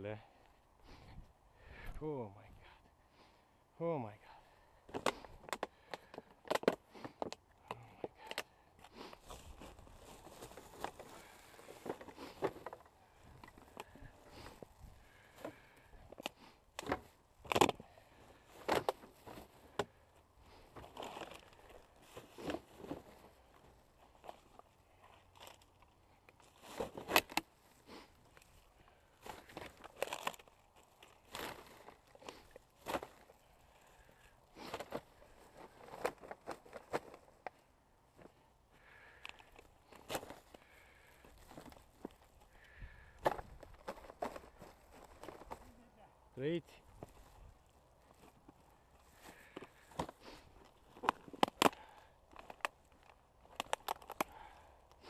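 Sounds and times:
footsteps crunching dry leaves: 0:09.0 - 0:12.4.

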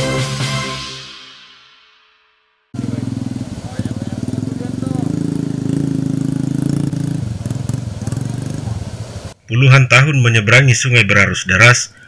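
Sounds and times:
motorcycle engine running: 0:02.8 - 0:09.4.

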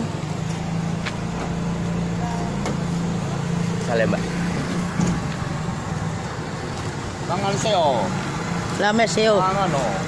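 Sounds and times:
idling vehicle engine hum: 0:00.0 - 0:10.0
traffic noise: 0:00.0 - 0:10.0.

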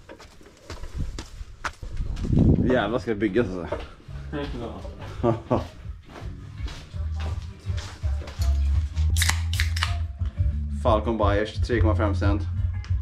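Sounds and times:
background music with bass line: 0:03.9 - 0:13.0.

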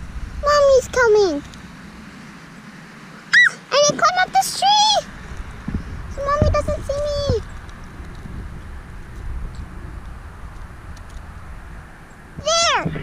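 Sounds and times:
child squealing and humming: 0:03.3 - 0:03.9.

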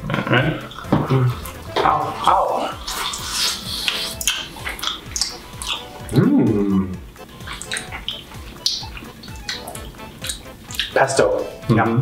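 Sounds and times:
people chewing crispy pizza: 0:00.0 - 0:11.0
wet lip-smacking: 0:00.0 - 0:11.1
background music with low beat: 0:00.0 - 0:12.0.

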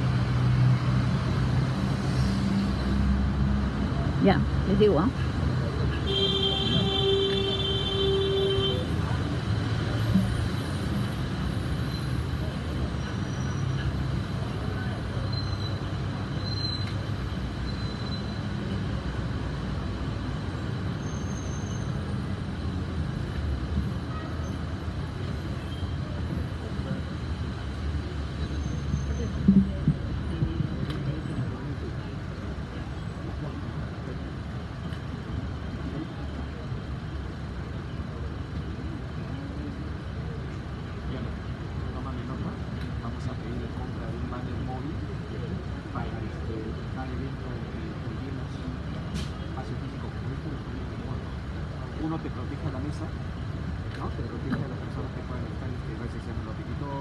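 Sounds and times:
murmur of voices: 0:23.9 - 0:57.0.

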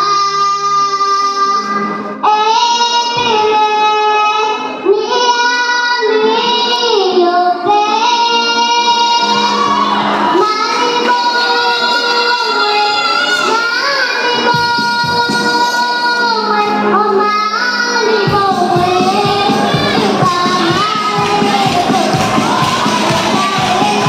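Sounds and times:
girl singing gospel song: 0:00.0 - 0:24.0.

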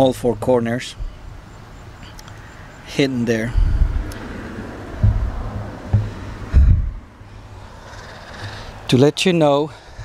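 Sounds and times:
car driving past: 0:03.9 - 0:08.7
low thumps on microphone: 0:04.9 - 0:07.1.

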